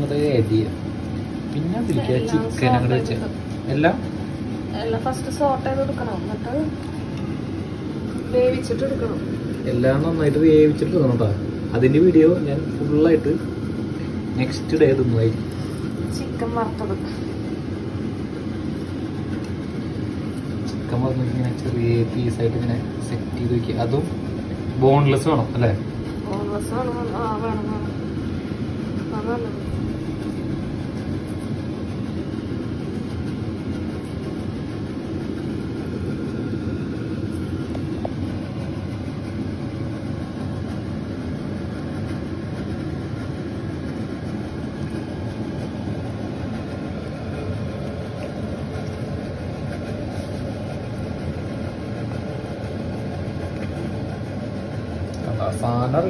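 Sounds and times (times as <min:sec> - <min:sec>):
low machine hum: 0:00.0 - 0:56.0.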